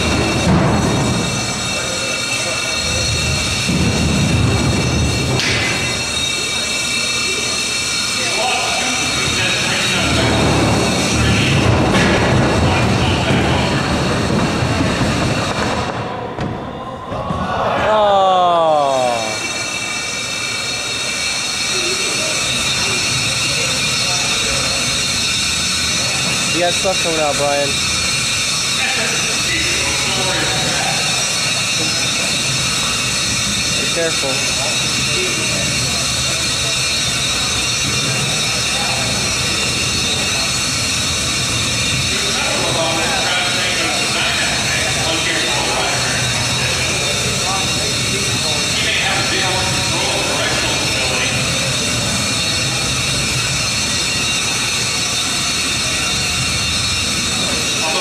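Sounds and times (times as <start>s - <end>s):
electric motors whining: 0.0s - 16.3s, 16.9s - 58.0s
rush of mechanical noise: 0.0s - 16.4s, 18.0s - 58.0s
people talking: 0.0s - 58.0s.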